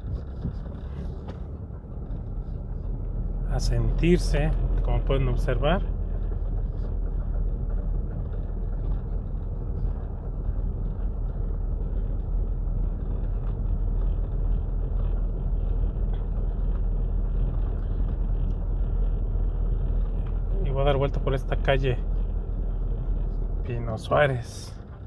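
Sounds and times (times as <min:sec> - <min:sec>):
car engine and road rumble: 0:00.0 - 0:25.0.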